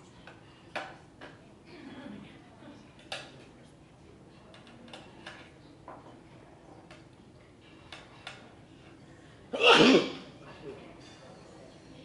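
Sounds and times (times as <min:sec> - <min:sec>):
person sneezing: 0:09.6 - 0:10.3.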